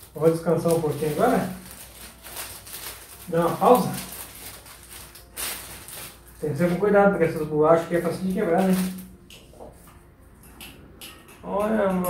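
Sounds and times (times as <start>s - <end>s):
short plastic crinkle: 0.0s - 6.8s
plastic wrapper rustling: 0.0s - 9.2s.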